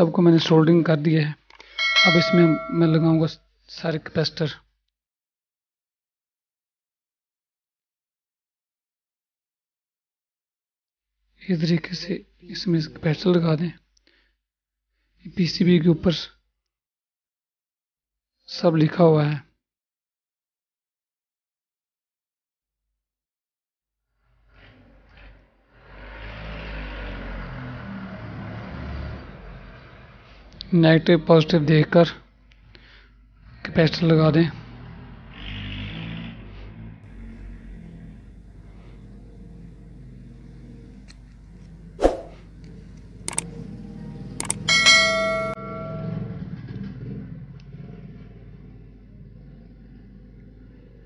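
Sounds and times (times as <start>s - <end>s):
bright bell ring: 1.7s - 3.3s, 44.5s - 46.4s
road noise: 1.8s - 3.3s, 24.6s - 31.2s, 32.6s - 51.0s
vehicle engine rumbling: 34.7s - 51.0s
mouse clicks: 43.3s - 43.5s, 44.4s - 44.6s.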